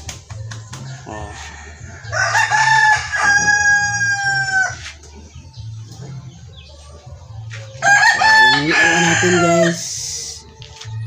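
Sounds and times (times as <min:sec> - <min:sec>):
rooster crowing: 0:01.0 - 0:04.9, 0:07.8 - 0:09.9.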